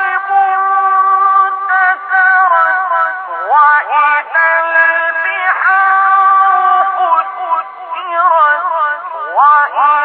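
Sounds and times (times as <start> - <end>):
man reciting in ornamented melody: 0.0 - 10.0.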